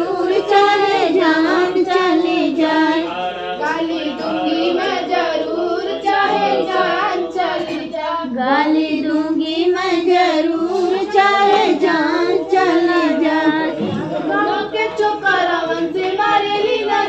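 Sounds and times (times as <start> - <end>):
women singing folk song: 0.0 - 17.0.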